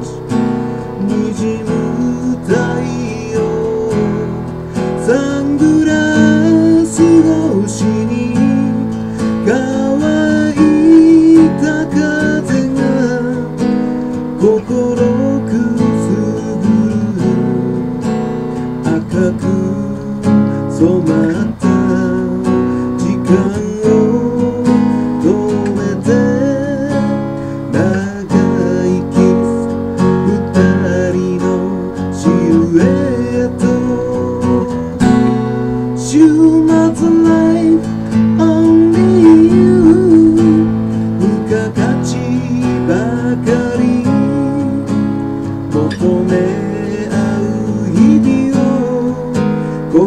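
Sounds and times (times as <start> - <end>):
acoustic guitar strumming chords: 0.0 - 50.0.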